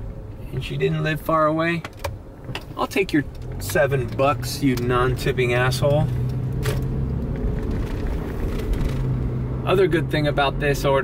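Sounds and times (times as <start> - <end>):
car engine hum: 0.0 - 11.0
road rumble: 0.0 - 11.0.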